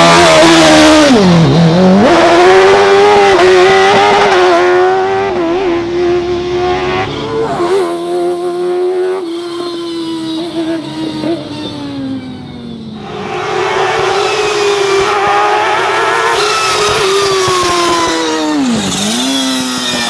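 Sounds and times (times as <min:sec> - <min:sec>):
racing car engine accelerating: 0:00.0 - 0:20.0.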